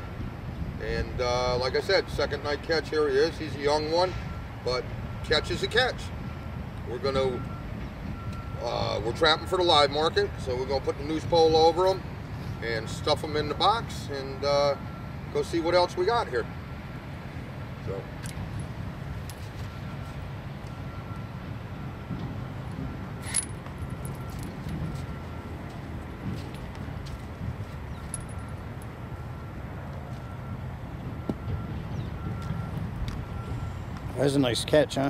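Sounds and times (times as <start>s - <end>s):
distant trucks and machinery rumble: 0.0s - 35.0s
metallic clicks and chain rattles: 23.2s - 24.8s.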